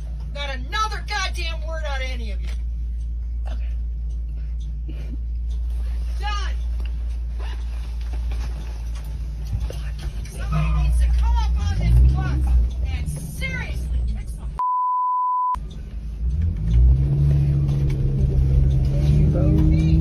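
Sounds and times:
bus engine: 0:00.0 - 0:14.6, 0:15.6 - 0:20.0
road rumble: 0:00.0 - 0:14.6, 0:15.6 - 0:20.0
voices talking: 0:09.6 - 0:14.6
high censor bleep: 0:14.6 - 0:15.6.

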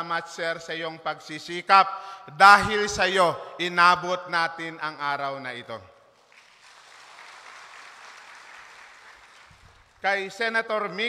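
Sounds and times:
audience clapping: 0:06.2 - 0:10.1.

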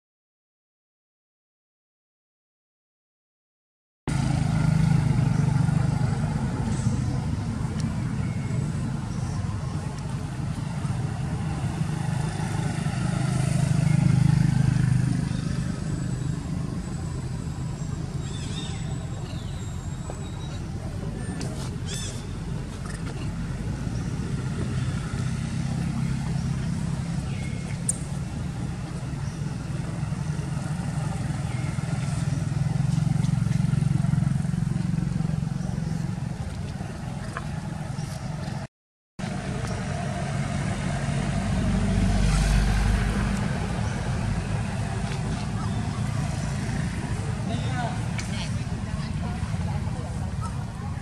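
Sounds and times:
traffic engine rumble: 0:04.1 - 0:51.0
faint background voices: 0:42.3 - 0:51.0.

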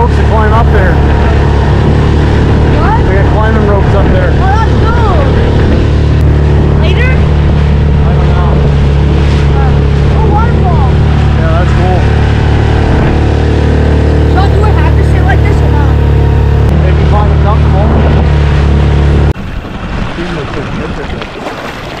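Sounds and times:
outboard motor running: 0:00.0 - 0:22.0.

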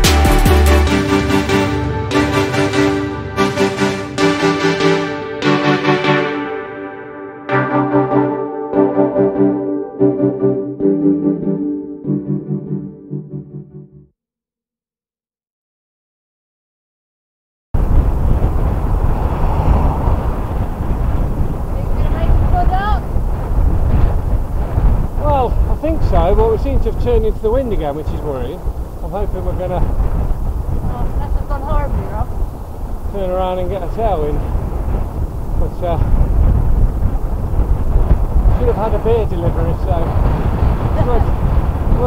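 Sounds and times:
wind buffeting microphone: 0:17.8 - 0:42.0.

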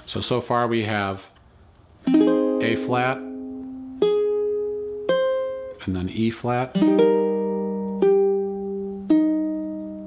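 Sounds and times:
ukulele chord strummed: 0:02.0 - 0:05.9, 0:06.7 - 0:10.0
plucked ukulele note: 0:02.1 - 0:05.8, 0:06.8 - 0:10.0.

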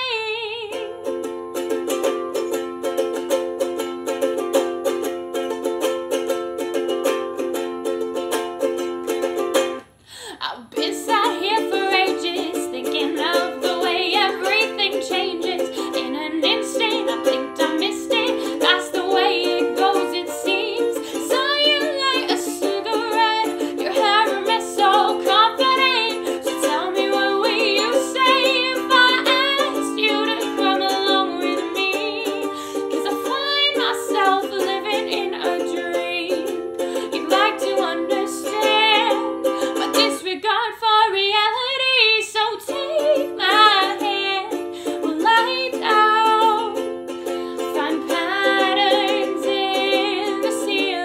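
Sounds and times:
woman singing: 0:00.0 - 0:01.3, 0:10.2 - 0:51.0
strummed ukulele: 0:00.0 - 0:10.0, 0:10.7 - 0:51.0.

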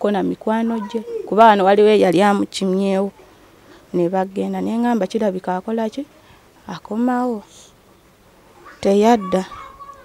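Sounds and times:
woman talking: 0:00.0 - 0:03.2, 0:03.9 - 0:07.8, 0:08.8 - 0:09.6.

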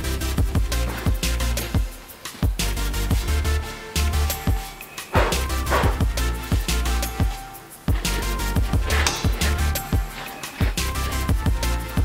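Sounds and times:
electronic music with heavy bass: 0:00.0 - 0:12.0.

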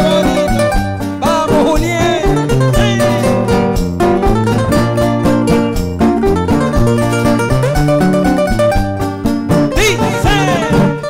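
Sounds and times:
acoustic guitars playing: 0:00.0 - 0:11.0.

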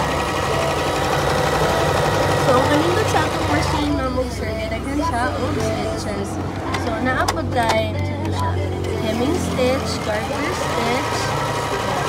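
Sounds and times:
sewing machine stitching: 0:00.0 - 0:04.1, 0:09.0 - 0:12.0
person's voice: 0:00.0 - 0:12.0.

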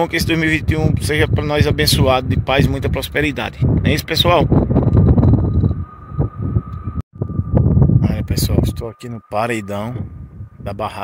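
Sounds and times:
wind buffeting microphone: 0:00.0 - 0:11.0
thin steady high tone: 0:04.1 - 0:11.0.

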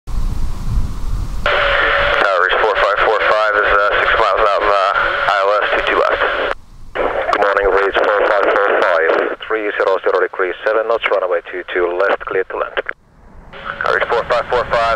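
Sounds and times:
rumble and hiss: 0:00.1 - 0:14.9
tinny radio speech: 0:01.5 - 0:13.0, 0:13.6 - 0:14.9.

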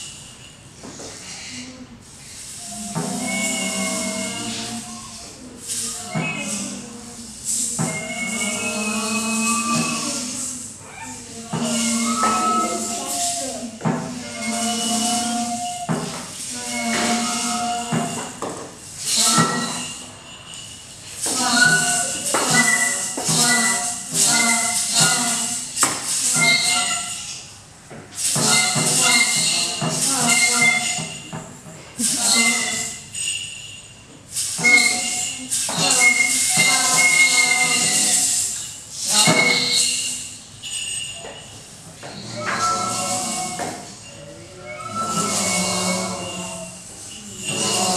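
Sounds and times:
loud hissing shaking noise: 0:02.1 - 0:10.8, 0:11.4 - 0:27.5, 0:34.3 - 0:41.0.

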